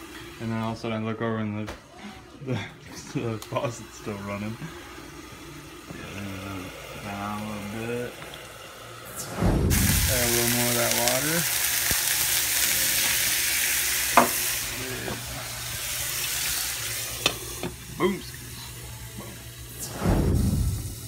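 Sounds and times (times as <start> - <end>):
sausages frying in a pan: 3.0 - 20.0
loud sizzle of water in pan: 3.6 - 21.0.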